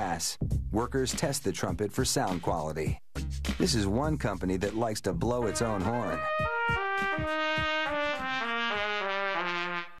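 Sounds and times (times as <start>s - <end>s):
trumpet playing descending notes: 5.4s - 10.0s.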